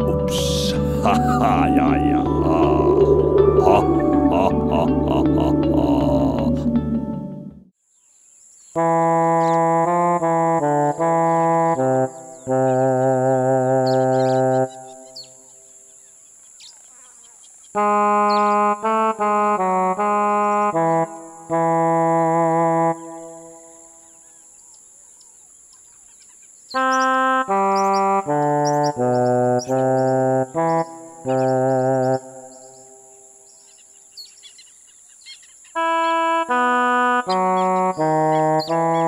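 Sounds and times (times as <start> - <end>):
brass wind instrument music: 0.0 - 7.7, 8.8 - 15.2, 17.8 - 23.9, 26.8 - 32.7, 35.8 - 39.0
low horn-like melody: 0.0 - 7.7, 8.8 - 15.2, 17.8 - 24.0, 26.7 - 32.9, 35.8 - 39.0
steady high whine: 1.0 - 7.6
faint bird chirps: 11.2 - 18.7, 23.5 - 36.3.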